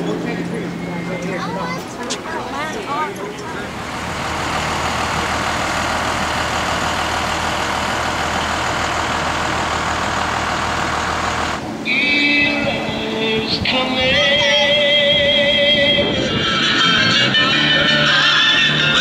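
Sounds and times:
diesel bus engine rumbling: 0.0s - 19.0s
music: 14.1s - 19.0s.

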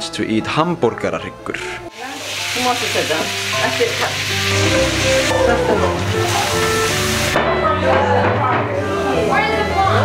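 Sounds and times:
food sizzling in a frying pan: 1.9s - 7.4s.

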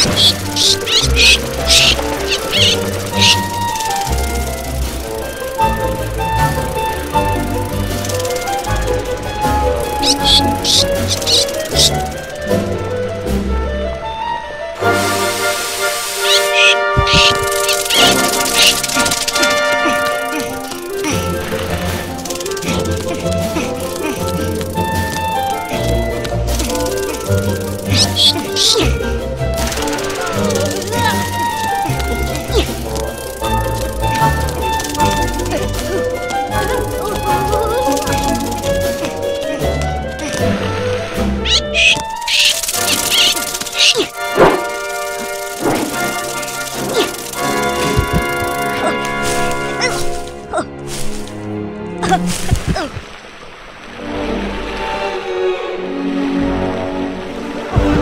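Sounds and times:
high-pitched cartoon squeaks: 0.0s - 4.7s, 9.8s - 12.2s, 16.2s - 21.3s, 22.4s - 29.0s, 29.6s - 39.1s, 41.4s - 50.1s
sustained instrumental music: 0.0s - 58.0s.

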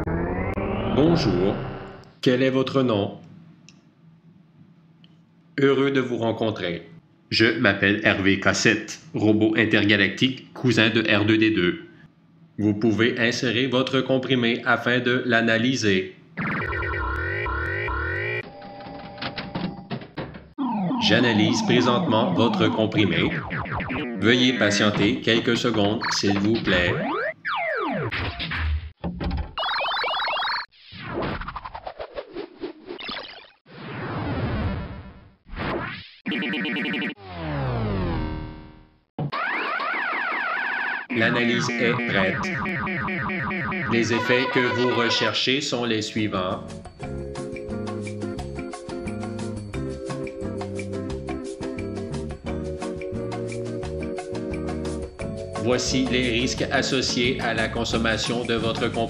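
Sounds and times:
electronic falling glide: 0.0s - 2.0s, 16.4s - 18.4s, 20.6s - 25.0s, 36.4s - 38.8s
rising electronic bleeps: 0.0s - 2.0s, 16.4s - 18.5s, 20.6s - 24.9s, 26.0s - 28.1s, 36.3s - 38.9s, 41.1s - 45.2s
person speaking: 20.6s - 23.4s, 24.2s - 27.0s, 41.1s - 42.6s, 43.9s - 45.5s.

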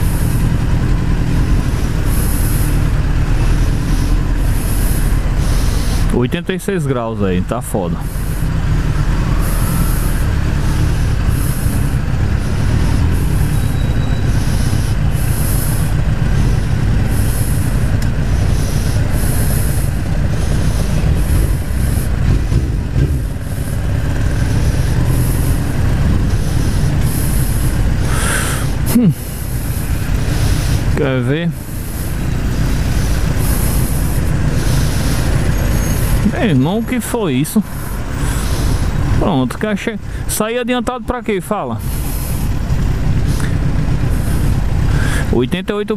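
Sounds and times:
motorcycle engine at low revs: 0.0s - 45.9s.

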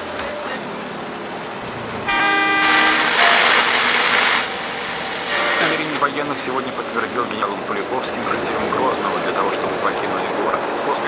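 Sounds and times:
bus interior running noise: 0.0s - 11.0s
loud rush of noise: 0.0s - 11.0s
vehicle horn: 2.1s - 4.6s.

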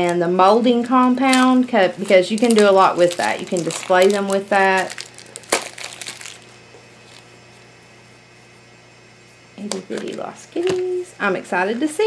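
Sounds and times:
low steady hum: 0.0s - 12.0s
sharp plastic crack: 1.3s - 6.5s
plastic wrapping peeled off: 1.3s - 7.3s
plastic crinkling: 1.3s - 7.4s.

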